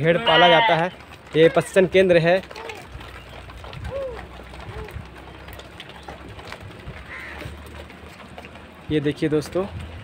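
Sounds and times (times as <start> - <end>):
sheep calls: 0.0 - 1.6.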